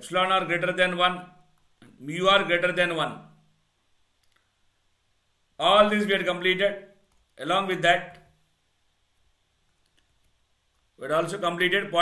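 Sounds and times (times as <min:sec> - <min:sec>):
man's voice: 0:05.6 - 0:08.2, 0:11.0 - 0:12.0.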